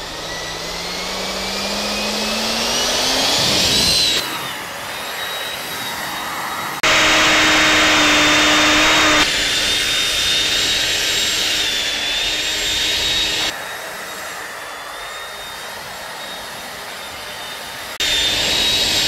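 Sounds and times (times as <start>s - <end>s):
drone motors whining: 0.0s - 19.0s.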